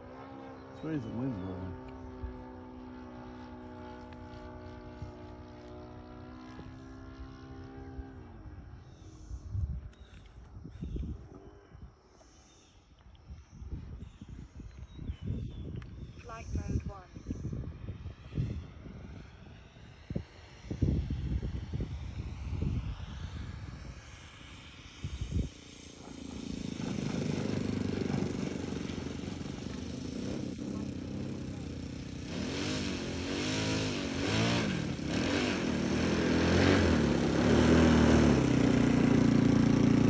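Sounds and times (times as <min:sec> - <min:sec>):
model airplane engine: 0:00.0 - 0:40.0.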